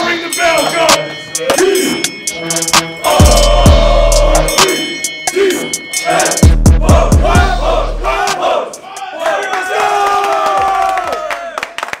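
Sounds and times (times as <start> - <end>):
men shouting battle cry: 3.0 - 10.6.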